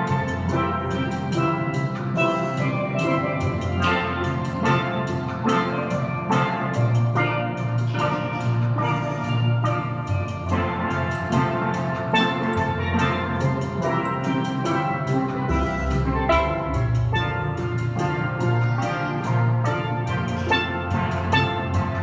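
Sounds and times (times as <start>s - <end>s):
low bass notes: 0.0s - 22.0s
steel pan band playing: 0.0s - 22.0s.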